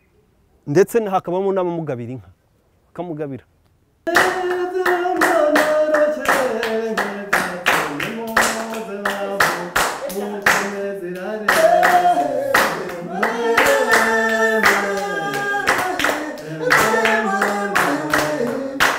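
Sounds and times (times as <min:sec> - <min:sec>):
hand-clapping: 0:04.1 - 0:18.9
children singing: 0:10.0 - 0:18.9.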